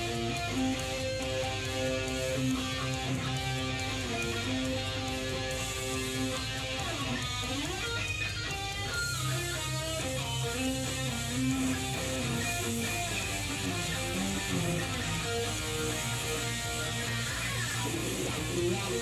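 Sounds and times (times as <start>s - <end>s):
electric guitar lead bent notes: 0.0s - 19.0s
sustained low guitar notes: 0.0s - 19.0s.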